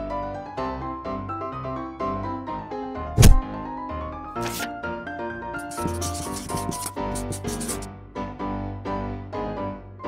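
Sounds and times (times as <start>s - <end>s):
marker scratching on paper: 3.2s - 3.4s, 4.4s - 4.7s, 5.6s - 7.9s.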